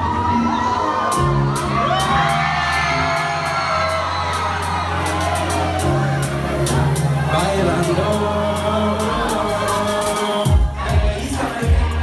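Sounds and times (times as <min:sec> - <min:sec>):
crowd whooping and cheering: 0:00.0 - 0:12.0
live music with deep bass beat: 0:00.0 - 0:12.0.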